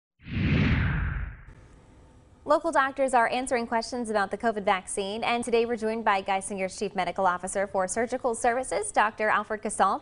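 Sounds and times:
deep rumble: 0.2 - 1.6
whoosh sound effect: 0.2 - 1.6.

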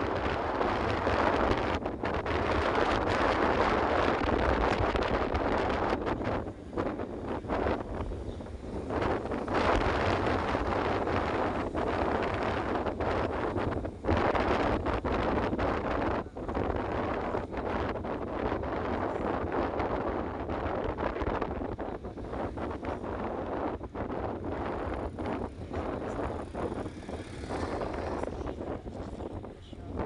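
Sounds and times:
low engine hum: 0.0 - 30.0
wind buffeting microphone: 0.0 - 30.0.

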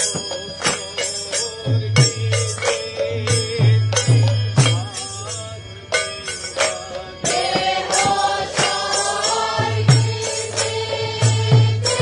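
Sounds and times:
drum beating steadily: 0.0 - 12.0
group singing in unison: 0.0 - 12.0.

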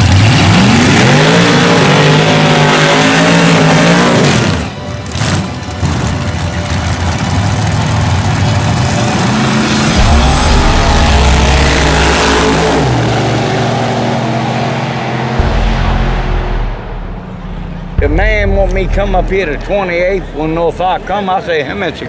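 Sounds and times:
drag car engines accelerating: 0.0 - 22.0.

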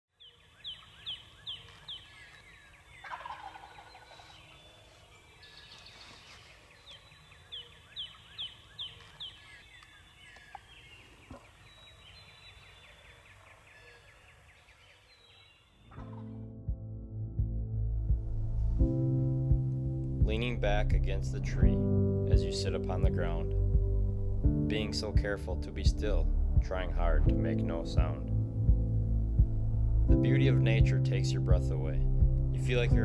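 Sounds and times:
birds singing: 0.1 - 16.3
turkey gobbling: 0.7 - 5.3.

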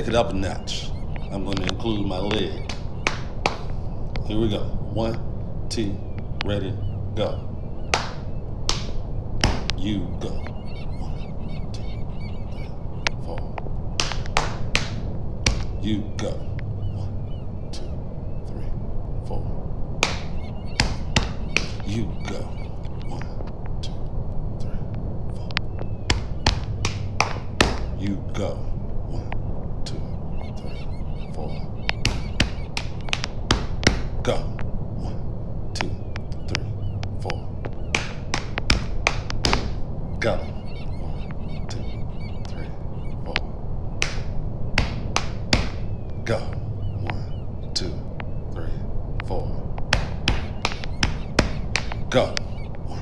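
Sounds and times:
steady low hum: 0.0 - 53.0
finger snaps: 0.6 - 4.3, 7.9 - 17.1, 20.0 - 28.0, 29.2 - 35.2, 35.8 - 53.0
hand claps and thigh slaps: 1.2 - 3.8, 7.9 - 10.5, 14.0 - 15.8, 20.0 - 22.0, 25.5 - 28.0, 31.8 - 34.1, 35.8 - 39.8, 44.0 - 45.9, 49.9 - 52.5.

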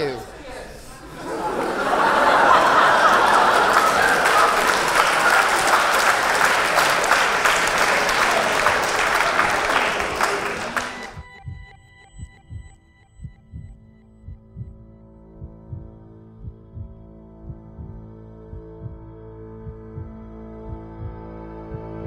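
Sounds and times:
audience applause: 1.1 - 11.2.

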